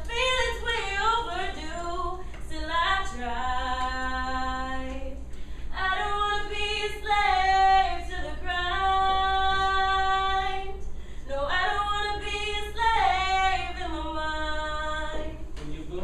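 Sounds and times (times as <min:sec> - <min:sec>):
woman singing unaccompanied: 0:00.0 - 0:15.6.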